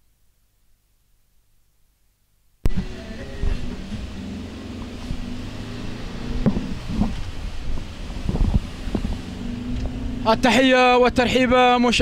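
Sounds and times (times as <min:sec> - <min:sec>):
vehicle engine running: 0:02.7 - 0:11.2
wind noise on microphone: 0:02.7 - 0:12.0.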